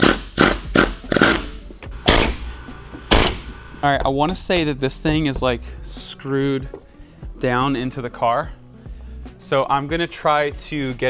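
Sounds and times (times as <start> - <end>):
pneumatic air hammer bursts: 0.0 - 3.8.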